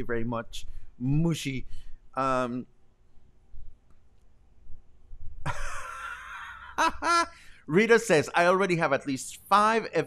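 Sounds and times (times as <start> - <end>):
man laughing breathily: 5.5 - 7.4.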